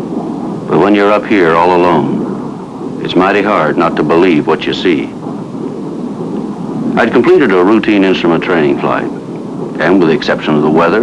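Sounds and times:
jet engine rumble: 0.0s - 11.0s.

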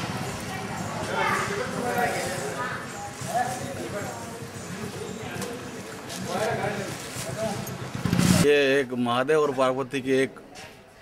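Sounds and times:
people talking: 0.0s - 7.7s.

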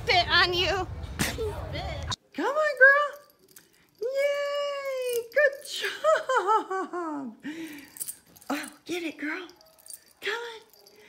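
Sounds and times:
person giggling and squealing: 5.7s - 7.4s.

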